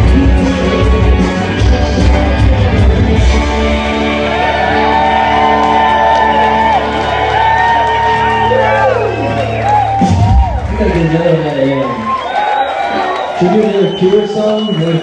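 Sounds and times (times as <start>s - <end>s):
electric guitar: 0.0s - 10.8s
rock band playing loud: 0.0s - 11.7s.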